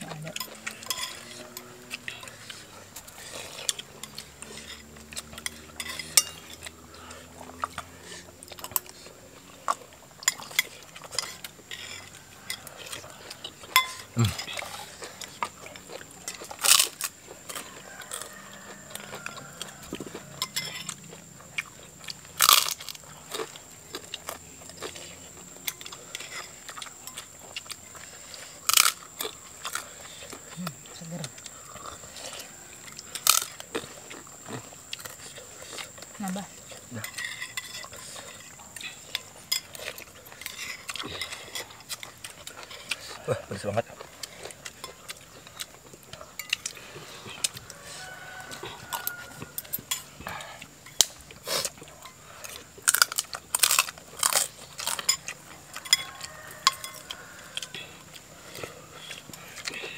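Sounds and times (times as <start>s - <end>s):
spoons clinking against bowls: 0.2s - 2.3s, 3.7s - 6.8s, 13.7s - 14.6s, 20.2s - 21.0s, 54.8s - 57.6s.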